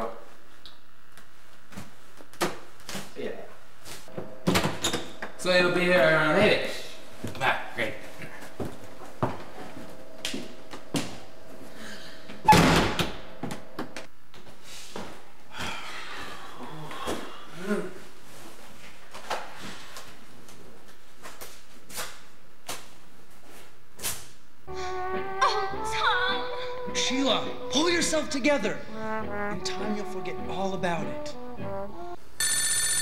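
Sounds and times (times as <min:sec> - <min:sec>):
low steady hum: 0:00.0 - 0:21.7
door slamming shut: 0:12.4 - 0:13.2.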